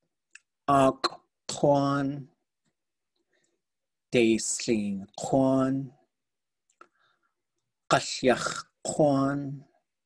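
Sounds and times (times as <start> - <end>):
person speaking: 0.2 - 2.7, 4.0 - 6.9, 7.8 - 10.0.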